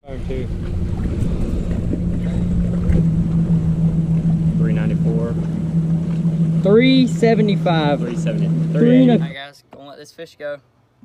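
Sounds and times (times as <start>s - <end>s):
low rumble: 0.0s - 9.4s
small motor humming: 0.3s - 9.4s.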